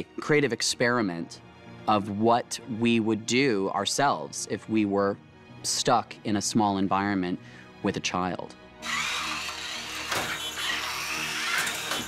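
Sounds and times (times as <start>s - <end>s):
toy car electric motor whirring: 8.8s - 12.0s.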